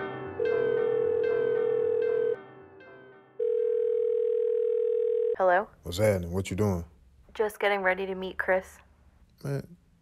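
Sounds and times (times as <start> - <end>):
telephone ringback tone: 0.4 - 2.4, 3.4 - 5.4.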